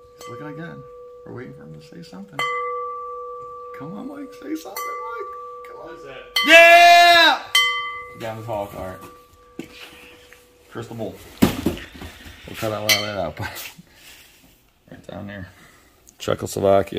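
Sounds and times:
crystal bowl ringing: 0.0 - 11.0.

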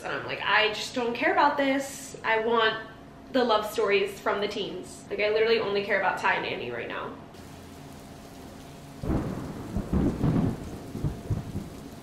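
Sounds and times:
steady rain: 7.4 - 12.0
thunder rumbling: 7.4 - 12.0.

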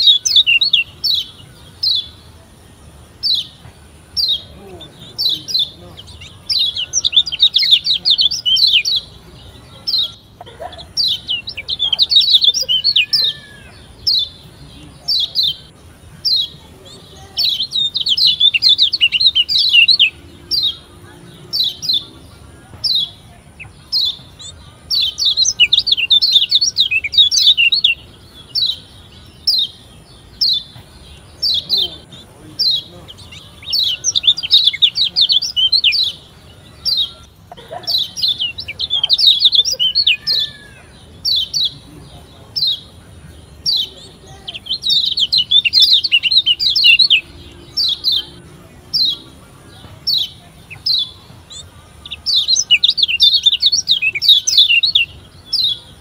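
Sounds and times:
bird chirping song: 0.0 - 56.0.

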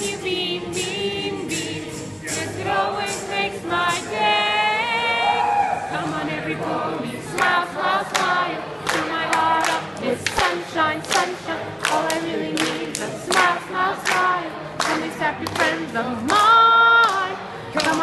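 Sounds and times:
crowd singing: 0.0 - 18.0
rhythmic clapping: 6.0 - 18.0.

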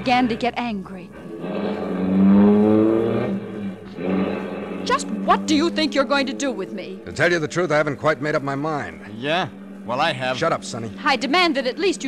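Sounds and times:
car engine driving: 0.0 - 12.0.

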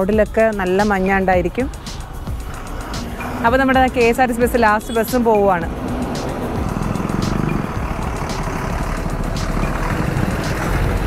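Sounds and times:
woman's voice: 0.0 - 1.8, 3.4 - 5.7
motor scooter passing: 0.0 - 11.0.

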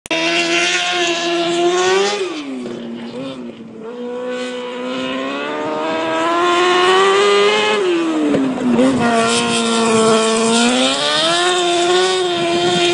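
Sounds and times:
racing car engine revving: 0.1 - 12.9.

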